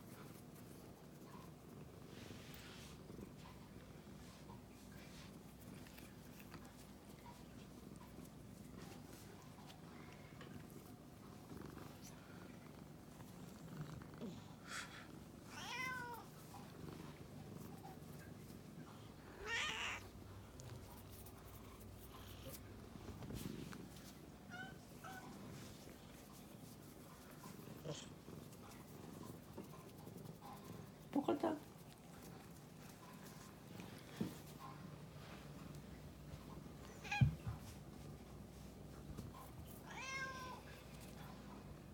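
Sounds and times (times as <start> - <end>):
cat purring: 0.0 - 39.9
cat meowing: 15.5 - 16.2, 19.4 - 20.0, 39.8 - 40.6.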